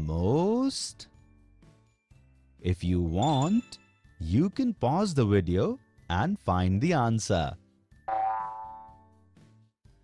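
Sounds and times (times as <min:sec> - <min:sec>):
cartoon pitched tone: 0:08.1 - 0:09.0.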